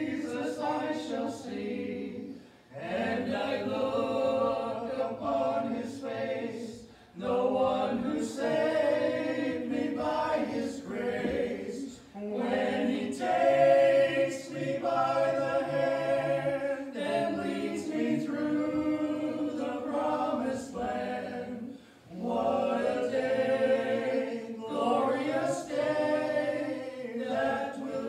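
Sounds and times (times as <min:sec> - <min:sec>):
group of voices singing: 0:00.0 - 0:28.0.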